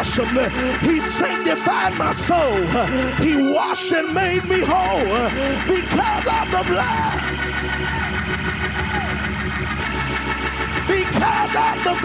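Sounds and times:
steady bass: 0.0s - 12.0s
sustained keyboard chords: 0.0s - 12.0s.

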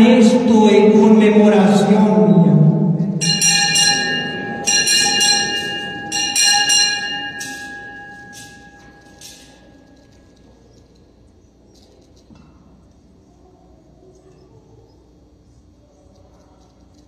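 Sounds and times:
altar bells ringing: 3.0s - 10.2s.

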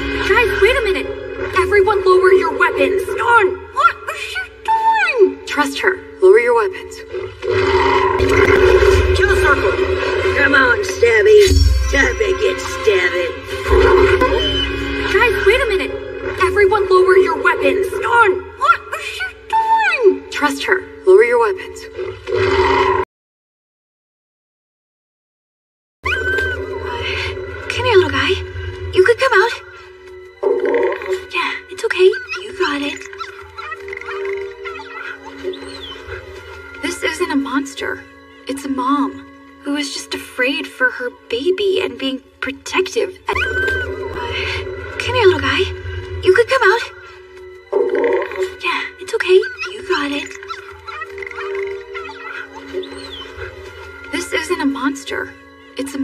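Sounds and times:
film score: 0.0s - 23.1s, 26.0s - 56.0s
animal calls: 13.6s - 19.2s, 26.0s - 27.1s, 30.4s - 37.1s, 43.3s - 44.4s, 46.4s - 54.4s
creature whimpering and whining: 13.7s - 15.0s, 26.0s - 27.0s, 31.9s - 36.4s, 43.3s - 44.2s, 47.8s - 53.6s.

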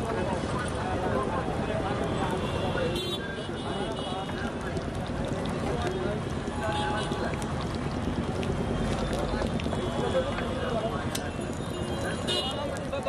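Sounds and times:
chatter of people: 0.0s - 13.0s
street noise: 0.0s - 13.0s.

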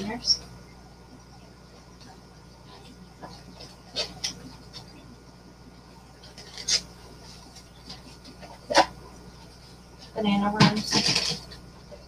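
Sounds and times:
plastic containers crackling: 10.4s - 12.0s.

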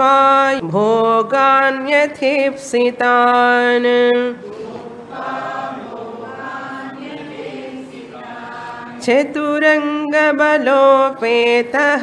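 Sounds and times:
group chanting in unison: 4.4s - 9.6s.

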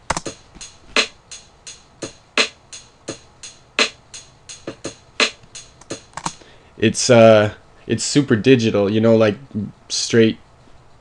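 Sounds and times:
closed hi-hat ticks: 0.0s - 6.5s
snare hits: 4.7s - 6.3s.

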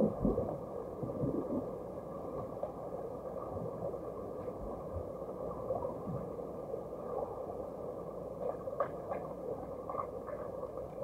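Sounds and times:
muffled underwater churning: 0.0s - 11.0s.

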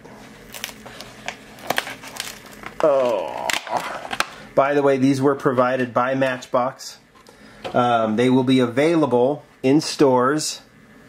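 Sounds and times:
plastic packaging crinkling: 0.4s - 4.4s
plastic packaging clicks: 0.5s - 4.4s
person speaking: 2.8s - 4.0s.

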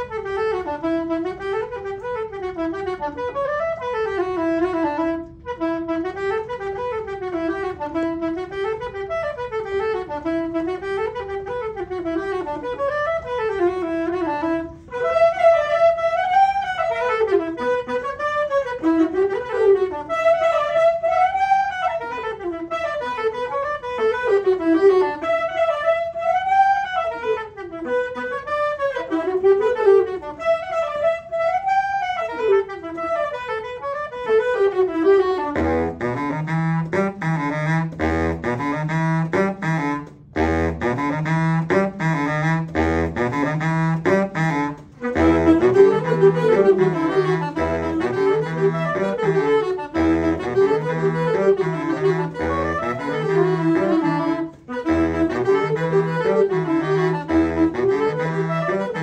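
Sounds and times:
saxophone ensemble playing: 0.0s - 59.0s.

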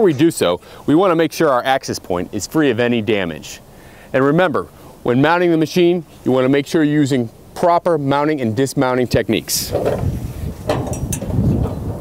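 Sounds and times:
wind buffeting microphone: 9.1s - 12.0s
knocks on steel ladder: 10.7s - 11.8s.

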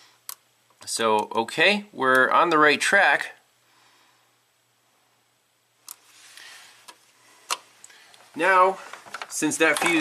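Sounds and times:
soft rustle: 6.0s - 9.7s.

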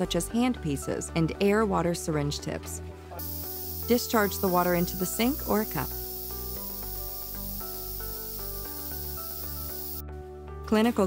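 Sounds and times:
background music: 0.0s - 11.0s
water spraying into steel sink: 3.2s - 10.0s.

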